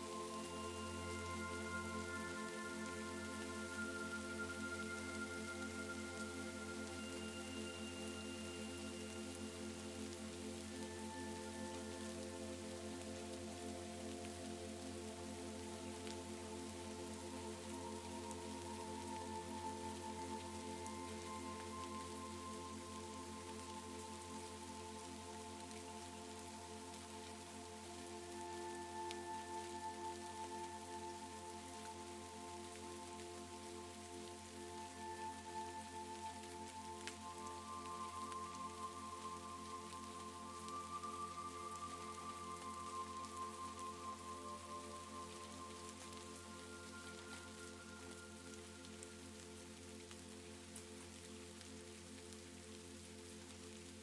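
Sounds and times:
ambient music with held chords: 0.0 - 54.0
steady rain: 0.0 - 54.0
raindrop ticks: 8.5 - 54.0.

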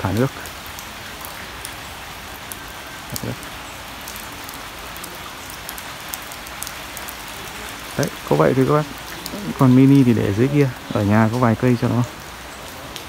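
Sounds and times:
raindrops ticking close by: 0.0 - 13.0
steady rain falling: 0.0 - 13.0.

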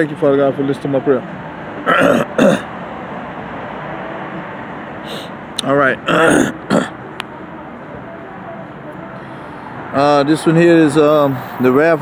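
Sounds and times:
steady background noise: 0.0 - 12.0
man coughing: 1.9 - 2.7, 6.1 - 6.9.

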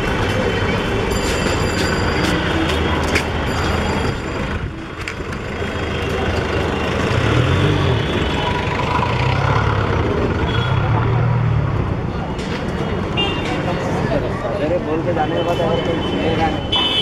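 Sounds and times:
chatter of passers-by: 0.0 - 17.0
low rumble of traffic: 0.0 - 17.0.

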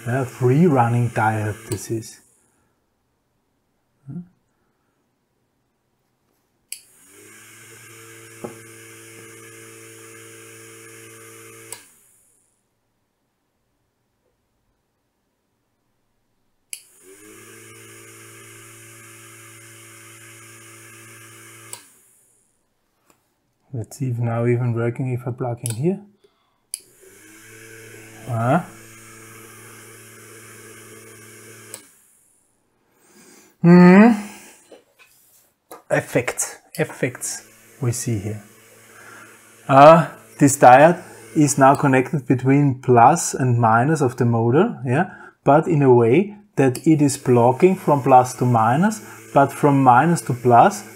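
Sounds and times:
small motor whining: 0.0 - 2.4, 6.7 - 12.6, 16.8 - 22.6, 26.7 - 32.6, 34.0 - 34.8, 36.0 - 42.4, 46.6 - 50.9
relay clicking: 1.2 - 1.9, 21.6 - 22.0, 31.1 - 32.0.

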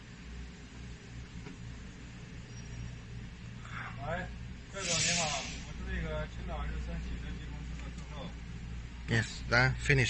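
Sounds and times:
steady low hum: 0.0 - 10.0
drawn-out hissing: 4.7 - 5.8
man talking: 9.1 - 10.0.

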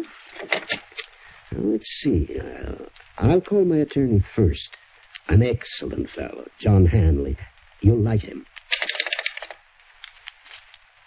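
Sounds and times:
recording hiss: 0.0 - 11.0.

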